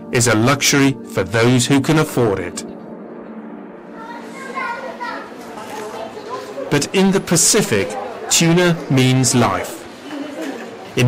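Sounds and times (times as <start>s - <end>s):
people talking: 4.0s - 11.0s.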